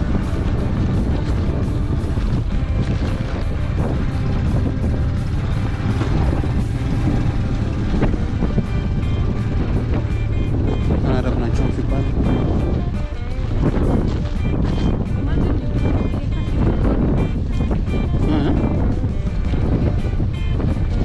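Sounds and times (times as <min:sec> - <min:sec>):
background music: 0:00.0 - 0:21.0
motorcycle engine running: 0:00.0 - 0:21.0
wind rumble on microphone: 0:00.0 - 0:21.0.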